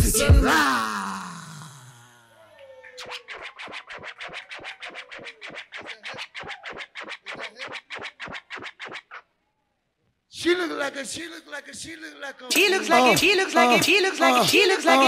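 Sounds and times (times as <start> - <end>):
record scratching: 3.0 - 9.3, 12.5 - 15.0.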